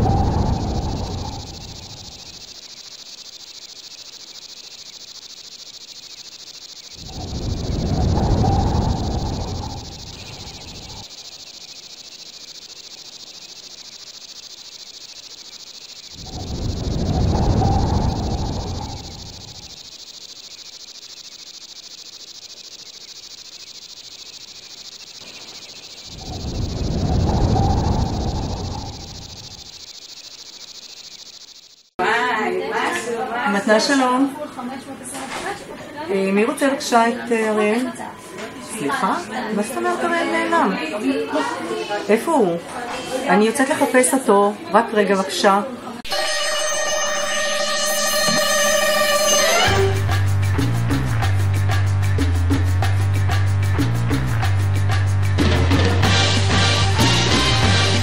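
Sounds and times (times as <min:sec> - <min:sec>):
low rumbling swells: 0:00.0 - 0:02.4, 0:07.0 - 0:11.0, 0:16.2 - 0:19.7, 0:26.1 - 0:29.7
steady high hiss: 0:00.0 - 0:31.9.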